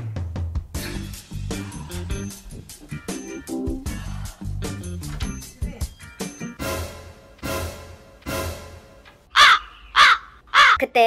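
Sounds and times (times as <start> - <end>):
background music beat: 0.0 - 9.3
crow cawing: 9.3 - 10.8.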